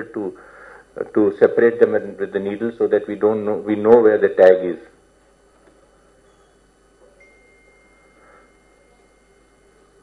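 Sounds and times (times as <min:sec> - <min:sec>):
faint high-pitched tone: 0:06.0 - 0:10.0.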